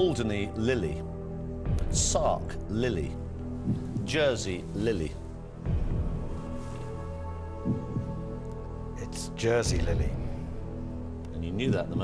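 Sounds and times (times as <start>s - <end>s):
low throbbing pulse: 0.9s - 8.4s, 9.6s - 12.0s.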